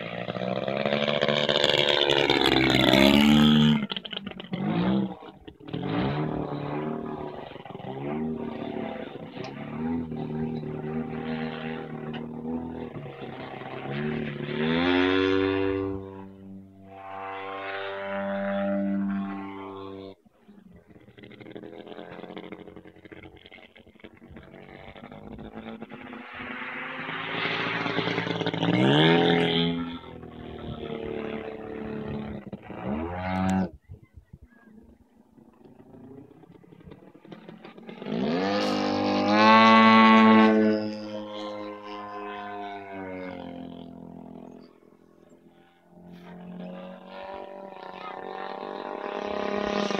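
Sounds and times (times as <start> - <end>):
model plane engine in flight: 0.0 - 49.9.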